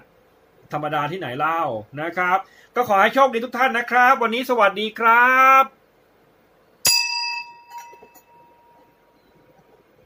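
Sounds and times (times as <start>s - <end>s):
bright metallic ding: 6.8s - 9.0s.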